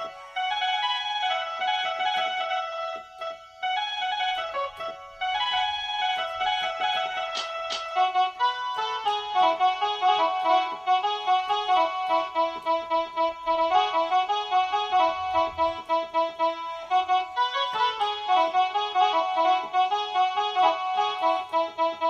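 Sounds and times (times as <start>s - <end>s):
mini keyboard melody: 0.0s - 22.0s.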